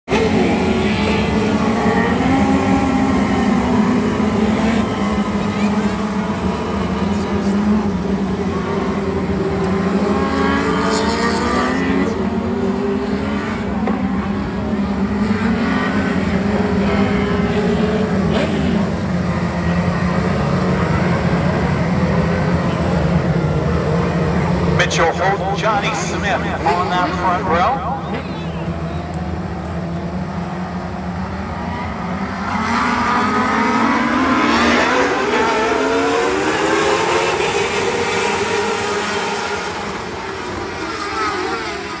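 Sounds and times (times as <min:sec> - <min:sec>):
racing car engines passing: 0:00.1 - 0:42.0.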